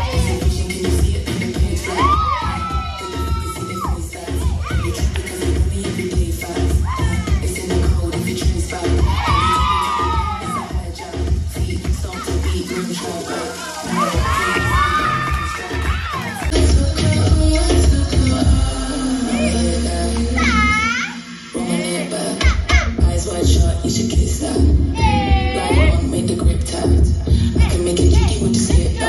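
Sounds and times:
people cheering and shouting: 0.0s - 0.7s, 1.6s - 5.2s, 6.7s - 7.6s, 8.8s - 11.2s, 11.8s - 16.6s, 18.1s - 21.3s, 25.0s - 26.1s
dance music with thumping bass: 0.0s - 29.0s.

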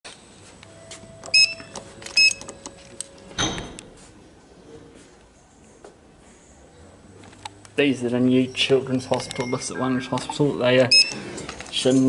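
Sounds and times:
short electronic beeps: 1.3s - 2.4s, 9.3s - 11.2s.

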